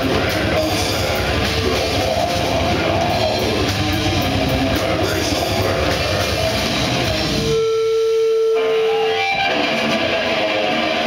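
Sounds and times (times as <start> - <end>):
bass: 0.0 - 11.0
distorted electric guitars: 0.0 - 11.0
drums: 0.0 - 11.0.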